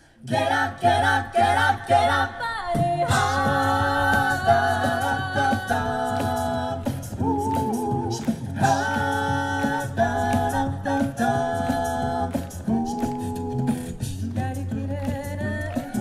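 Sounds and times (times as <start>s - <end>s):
a cappella group singing: 0.0s - 16.0s
vocal percussion hits: 0.4s - 16.0s.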